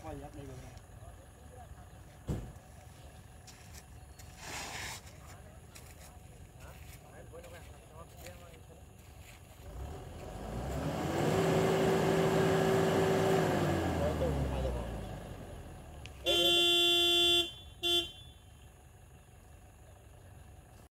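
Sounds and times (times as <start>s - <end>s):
vehicle passing by: 9.6s - 15.8s
vehicle horn honking: 16.2s - 18.6s.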